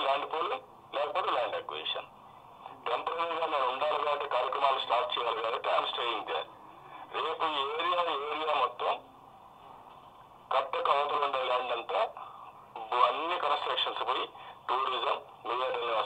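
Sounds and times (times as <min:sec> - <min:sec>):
man talking through laptop speaker: 0:00.0 - 0:02.1, 0:02.7 - 0:09.1, 0:10.5 - 0:16.0.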